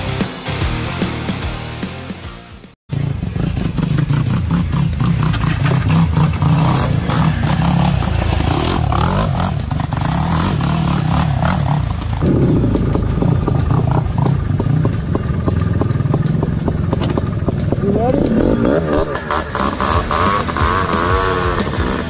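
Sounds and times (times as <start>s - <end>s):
buggy engine revving: 2.9s - 22.0s.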